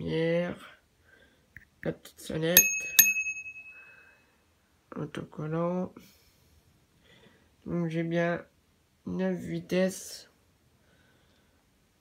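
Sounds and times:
bicycle bell ding: 2.6 - 4.1.

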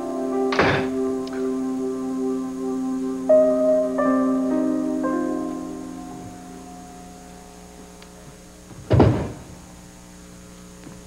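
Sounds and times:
low electrical hum: 0.0 - 11.0
loud dull thud: 8.7 - 9.5.

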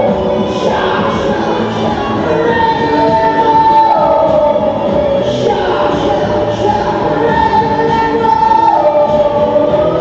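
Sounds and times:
choir-like singing over music: 0.0 - 10.0.

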